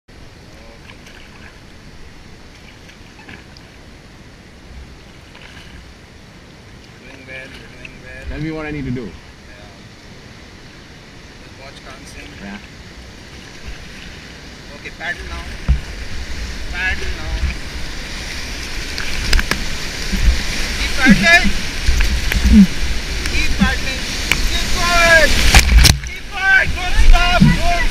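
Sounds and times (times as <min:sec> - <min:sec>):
river water rushing: 0:00.1 - 0:27.9
sharp paddle clicks: 0:24.2 - 0:24.5, 0:25.4 - 0:26.2.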